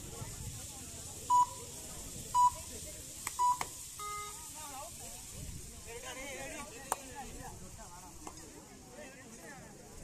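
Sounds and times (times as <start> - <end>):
faint background voices: 0.0 - 10.0
short electronic beeps: 1.3 - 1.6, 2.4 - 2.6, 3.4 - 4.4.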